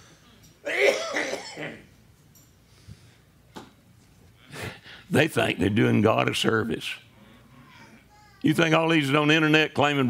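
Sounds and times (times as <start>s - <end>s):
man coughing: 0.6s - 1.9s.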